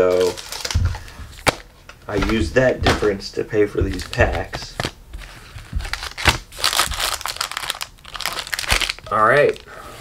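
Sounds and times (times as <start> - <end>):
foil packs crinkling: 0.0 - 9.9.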